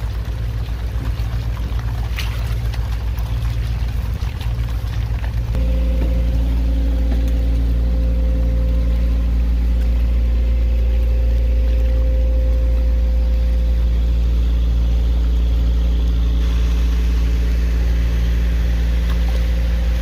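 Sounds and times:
engine running at low speed: 0.0 - 20.0.

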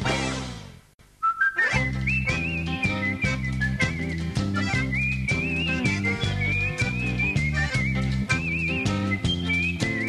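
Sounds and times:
whistled tune: 1.2 - 10.0
band with a steady beat: 1.7 - 10.0.

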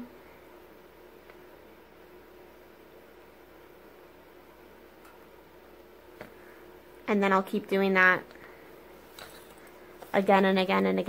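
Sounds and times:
steady hum: 0.0 - 11.0
fabric and pins handling: 8.3 - 11.0.

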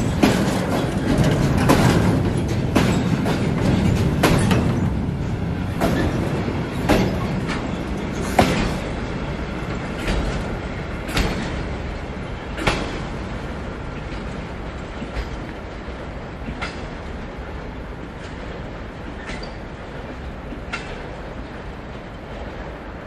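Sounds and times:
train wheels clacking over rail joints: 0.0 - 22.9
train rolling rumble: 0.0 - 23.0.

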